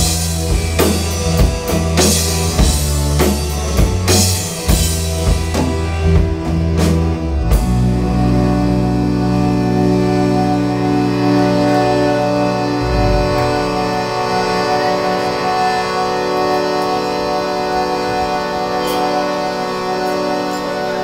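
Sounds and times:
organ-like drone: 0.0s - 21.0s
sustained guitar notes: 7.3s - 19.2s.

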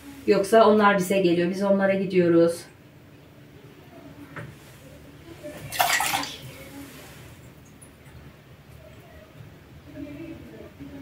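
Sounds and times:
water splashing cup rinsed: 5.7s - 6.6s.

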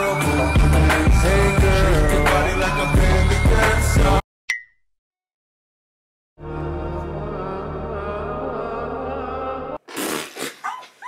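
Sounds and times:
background music: 0.0s - 4.2s, 6.4s - 9.8s
yelping cries: 10.6s - 11.0s.

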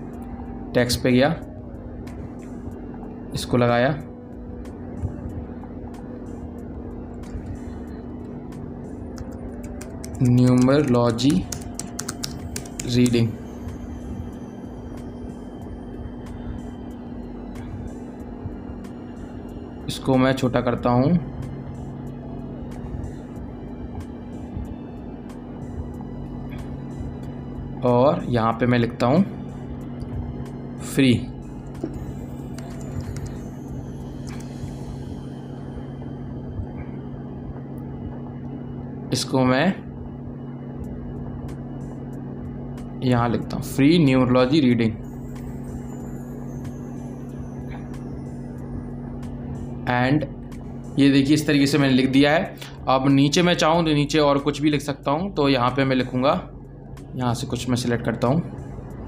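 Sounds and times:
steady low electrical hum: 0.0s - 59.0s
computer mouse clicks: 9.2s - 13.2s
keyboard clicks: 9.2s - 13.2s.

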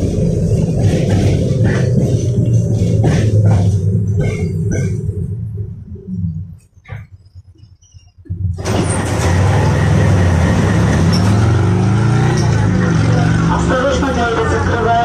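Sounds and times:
tram rumble and hum: 0.0s - 15.0s.

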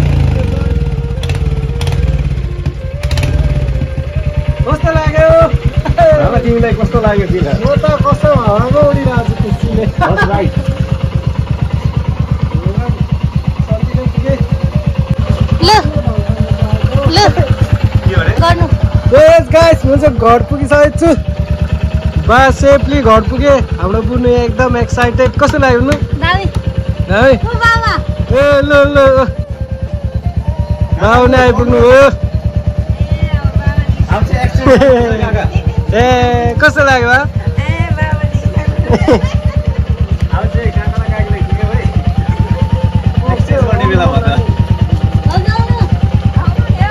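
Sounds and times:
motorcycle engine idling: 0.0s - 46.9s.

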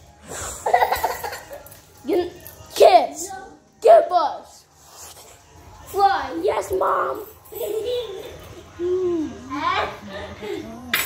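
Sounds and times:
child giggling: 0.6s - 1.6s, 7.5s - 8.6s.

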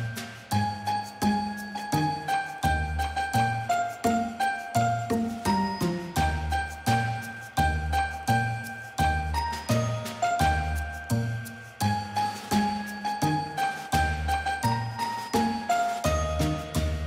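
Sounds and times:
tinkling bell-like notes: 0.0s - 17.0s.

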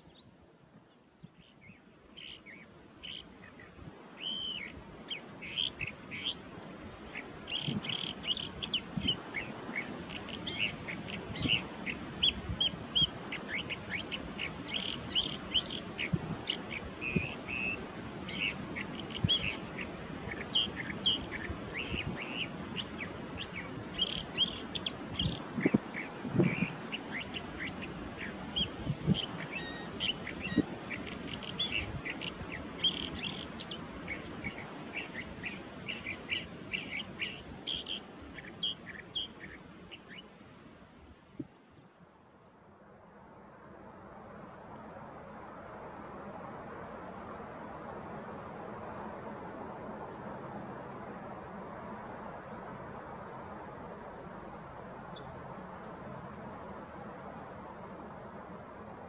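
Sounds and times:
bird singing varied phrases: 0.9s - 40.3s.

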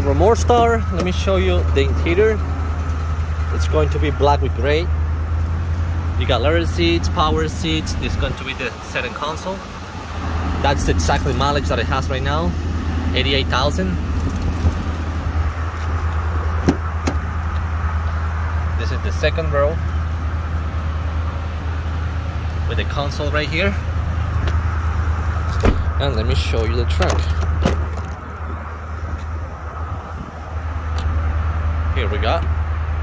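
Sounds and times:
engine idling: 0.0s - 33.0s
steady low rumble: 0.0s - 33.0s
car door latch click: 25.6s - 25.9s.

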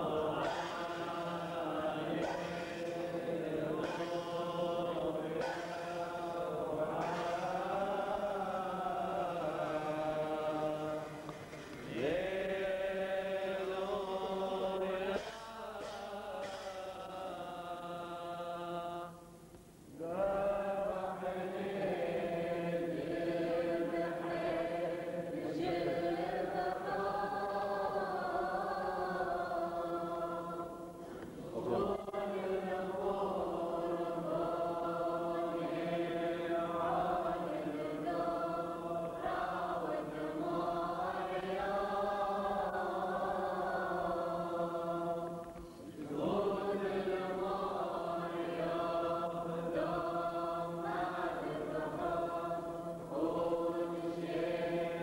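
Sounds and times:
men chanting a hymn: 0.0s - 19.3s, 20.0s - 55.0s
hand cymbals clashing: 2.1s - 8.2s, 15.1s - 17.2s.

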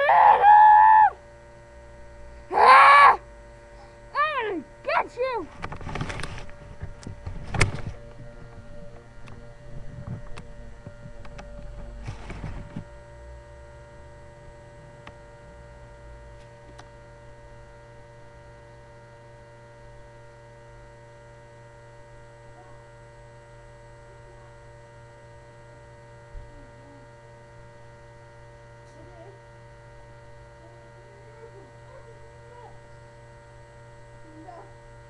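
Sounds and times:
electrical hum: 0.0s - 35.0s.

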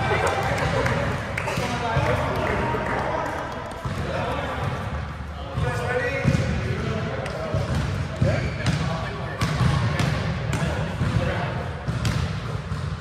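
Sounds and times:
players calling and chatting: 0.0s - 12.7s
hands slapping volleyball: 0.1s - 4.2s.

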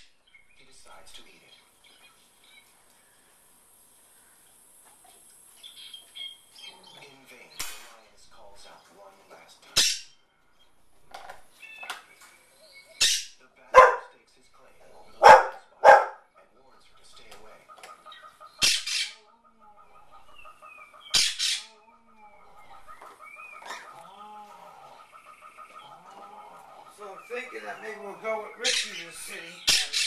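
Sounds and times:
faint television sound: 0.0s - 30.0s
dog barking: 13.7s - 14.2s, 15.1s - 16.3s.

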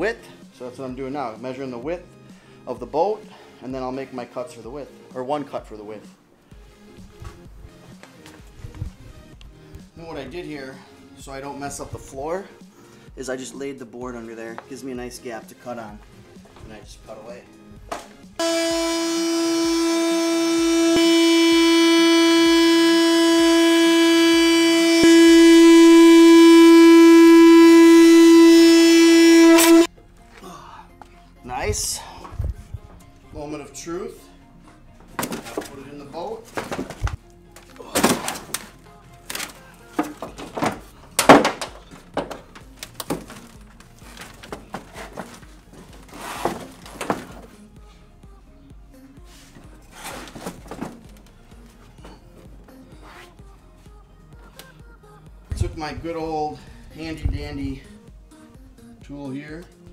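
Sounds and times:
power tool whining: 18.4s - 29.9s
knocks and thumps handling mat: 36.5s - 37.2s, 44.2s - 47.5s, 50.1s - 51.2s.

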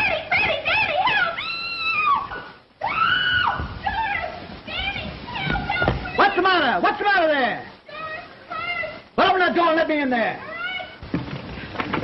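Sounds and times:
woman screaming: 0.9s - 4.3s.

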